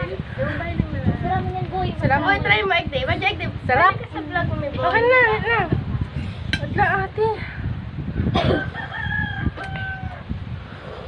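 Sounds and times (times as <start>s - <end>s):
rooster crowing: 8.5s - 10.3s.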